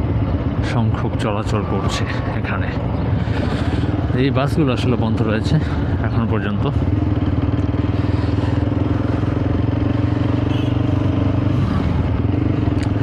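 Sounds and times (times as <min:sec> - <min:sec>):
motorcycle engine droning: 0:00.0 - 0:13.0.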